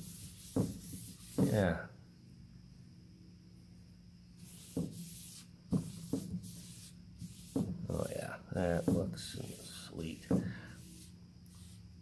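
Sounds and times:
cloth wiping wooden board: 0.0s - 1.7s, 4.5s - 11.8s.

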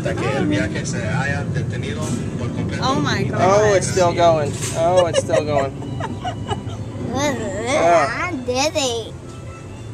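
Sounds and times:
spinning ride rumbling: 0.0s - 7.8s
voices: 0.0s - 8.4s.

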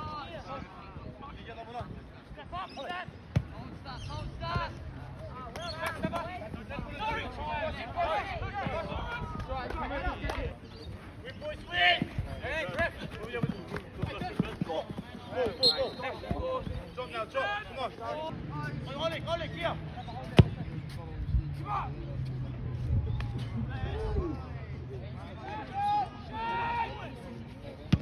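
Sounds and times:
football being kicked: 20.3s - 20.7s.

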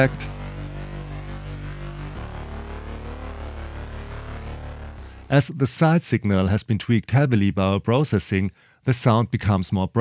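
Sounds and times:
synth drone chord: 0.0s - 5.3s.

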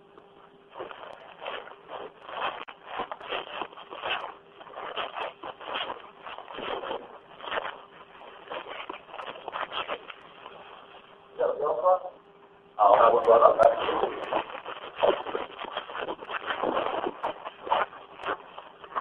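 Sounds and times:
muffled rustling over phone line: 0.0s - 19.0s.

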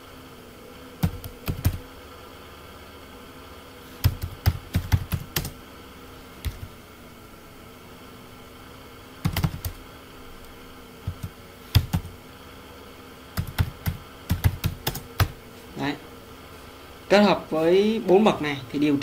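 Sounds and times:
faint steady hum: 0.0s - 19.0s
computer keyboard typing: 1.0s - 1.8s, 4.0s - 5.6s, 9.2s - 9.8s, 11.1s - 12.1s, 13.4s - 15.4s.

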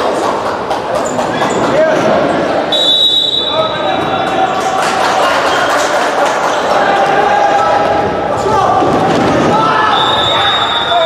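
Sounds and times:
players' voices in a hall: 0.0s - 11.0s
referee's whistle blast: 2.7s - 3.8s, 9.8s - 11.0s.

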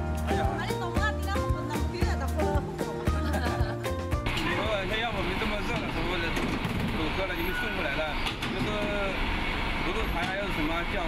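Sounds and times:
engine rumble: 2.6s - 11.0s.

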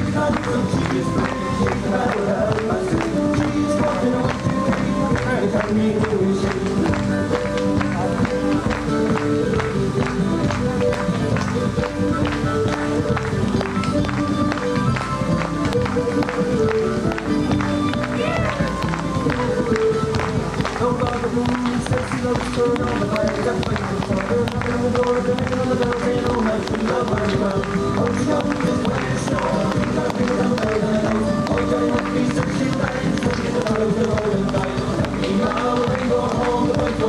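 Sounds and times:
dancers' shoes tapping on pavement: 0.0s - 37.0s
hands clapping: 0.0s - 37.0s
lively irish dance tune: 0.0s - 37.0s.

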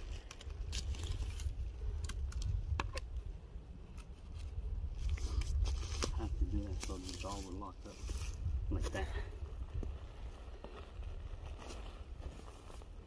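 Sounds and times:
steady low rumble: 0.0s - 13.0s
twigs clicking and crackling: 0.0s - 13.0s.

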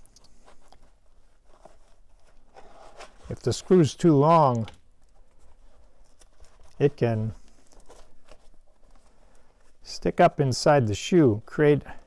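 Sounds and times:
gloved hands rustling: 0.0s - 12.0s.

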